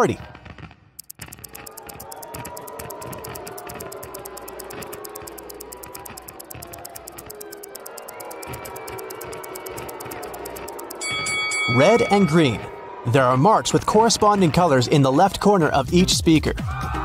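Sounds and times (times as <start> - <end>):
stopwatch ticking: 1.0 - 12.7.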